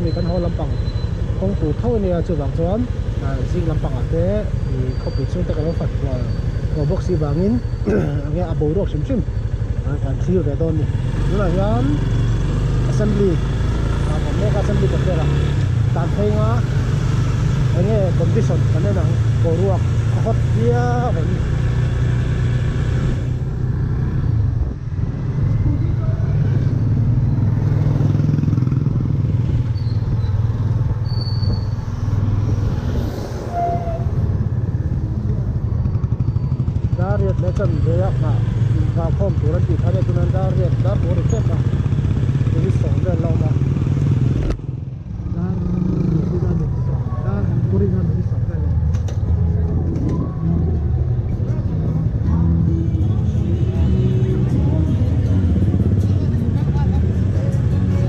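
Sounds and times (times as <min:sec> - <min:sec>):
road noise: 0:00.0 - 0:58.0.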